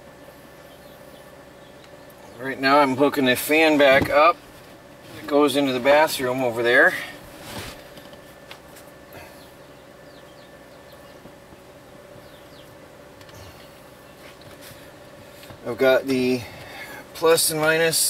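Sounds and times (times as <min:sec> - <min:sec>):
low steady hum: 0:00.0 - 0:18.0
rustle of electrical wires: 0:04.4 - 0:09.0, 0:13.2 - 0:15.8.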